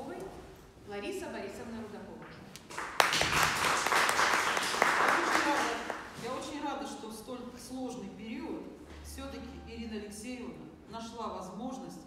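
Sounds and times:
small audience applauding: 2.6 - 6.1.

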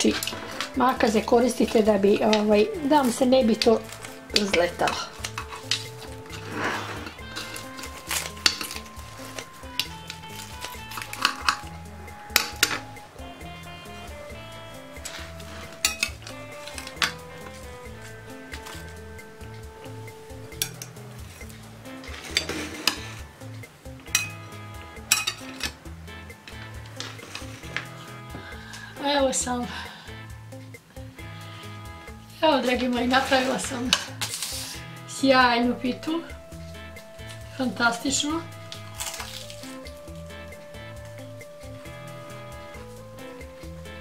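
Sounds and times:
soft background music: 0.0 - 44.0
scissors snipping pastry: 38.7 - 39.8.

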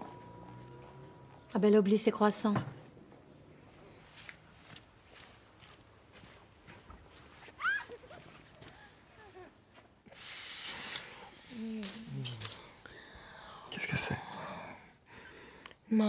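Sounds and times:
breathy sighs: 12.6 - 15.7.

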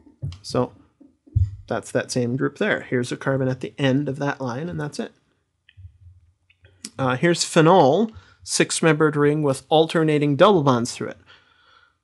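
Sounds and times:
person speaking: 0.0 - 5.2, 5.8 - 11.3.

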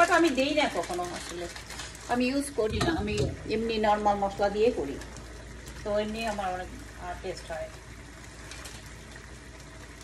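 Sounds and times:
woman speaking: 0.0 - 5.0, 5.8 - 7.7
sauce simmering with low hiss: 0.0 - 10.0.

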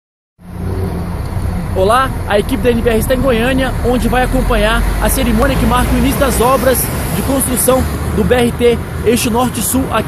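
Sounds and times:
road traffic rumble: 0.4 - 10.0.

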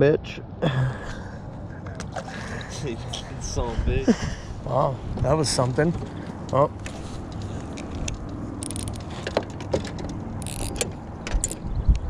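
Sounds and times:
wind: 0.0 - 12.0
water around boat: 0.6 - 12.0.

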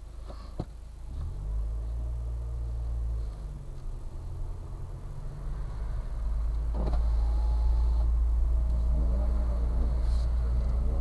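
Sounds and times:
car engine drone inside cabin: 0.0 - 11.0.

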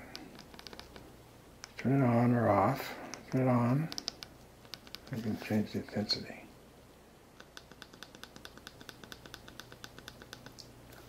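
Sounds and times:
gps control clicks: 0.0 - 1.8, 3.1 - 5.2.

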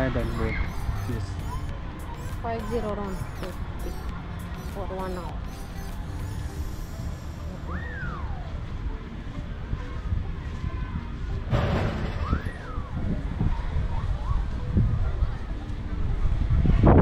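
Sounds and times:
high sweeping call: 0.0 - 8.4
wind buffeting microphone: 7.8 - 17.0.

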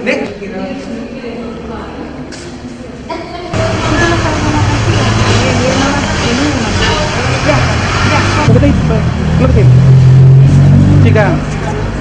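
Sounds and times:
people talking: 0.0 - 9.8.

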